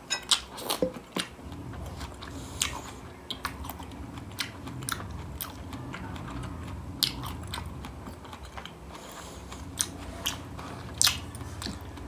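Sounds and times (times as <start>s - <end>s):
chewing food: 0.3s - 12.0s.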